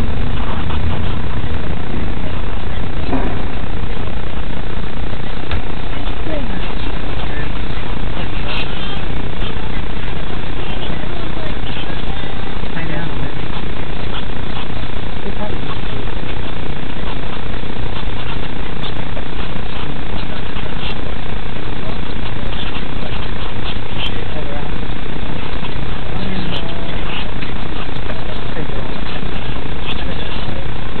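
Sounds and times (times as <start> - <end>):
rushing noise inside car cabin: 0.0 - 8.2.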